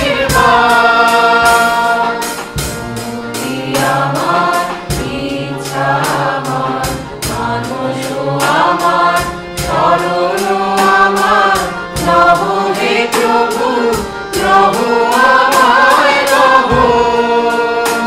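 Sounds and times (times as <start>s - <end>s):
harmonium held notes: 0.0s - 18.0s
mixed choir singing: 0.0s - 18.0s
steady percussive beat: 0.0s - 18.0s.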